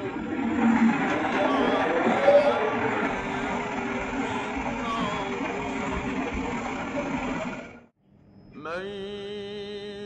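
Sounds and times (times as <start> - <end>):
scanner rotor whirring: 0.0 - 7.9.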